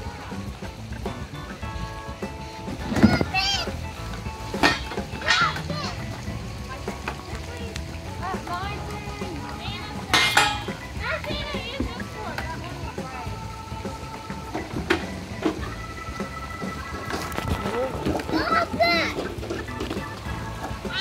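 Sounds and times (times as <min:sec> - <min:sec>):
background music: 0:00.0 - 0:21.0
children calling and chattering: 0:00.0 - 0:21.0.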